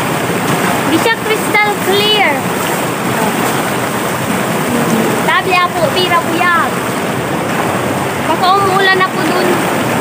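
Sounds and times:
river rushing over rapids: 0.0 - 10.0.

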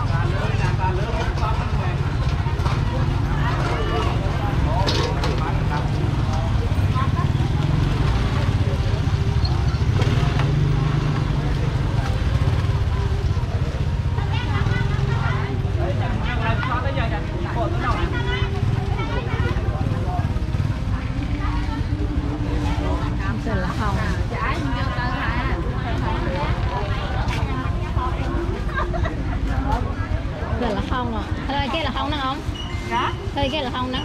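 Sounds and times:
motorbike engines passing: 0.0 - 34.0
people talking: 0.0 - 34.0.

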